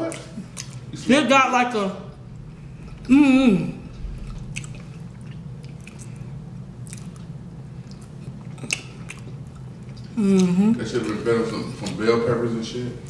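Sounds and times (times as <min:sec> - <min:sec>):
person chewing close to microphone: 0:00.0 - 0:00.9, 0:04.0 - 0:12.0
low hum: 0:00.5 - 0:08.6
wet mouth clicks: 0:04.0 - 0:06.2, 0:06.8 - 0:07.3, 0:07.9 - 0:10.6.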